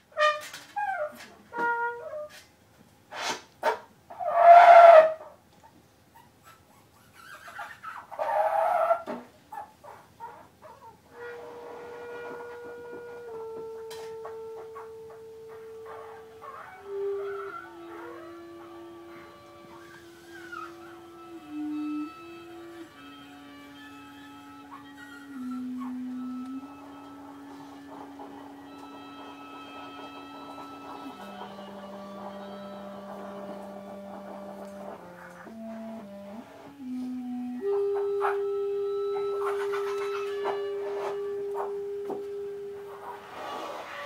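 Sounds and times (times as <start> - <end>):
trombone: 0.0 - 2.4, 3.1 - 5.4, 11.1 - 44.0
clarinet: 0.0 - 2.5, 3.1 - 5.4, 6.4 - 44.0
viola: 11.1 - 44.0.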